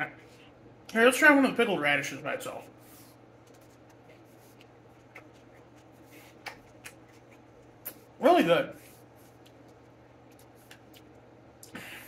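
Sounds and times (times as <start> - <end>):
steady low hum: 0.0 - 12.0
chewing crunchy food: 3.4 - 8.1, 9.2 - 11.3.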